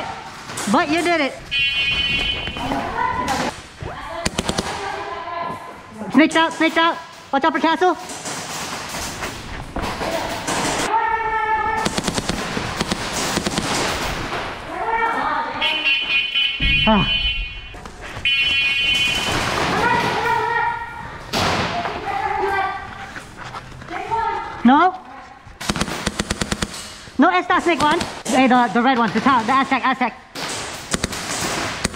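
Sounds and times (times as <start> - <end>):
people shouting: 2.0 - 6.0, 10.0 - 12.0, 19.2 - 23.0
airsoft guns firing: 4.2 - 5.1, 8.1 - 10.9, 11.7 - 14.7, 18.8 - 20.4, 25.6 - 28.3, 30.4 - 31.9.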